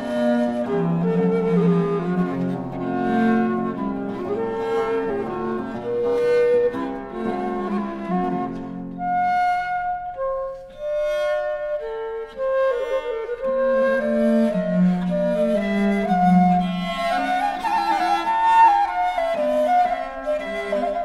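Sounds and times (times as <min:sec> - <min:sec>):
baroque flute: 0:00.0 - 0:21.0.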